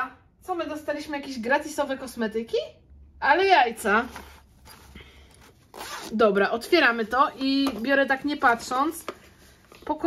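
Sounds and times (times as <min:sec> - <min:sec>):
zipper unzipping: 0:05.6 - 0:06.4.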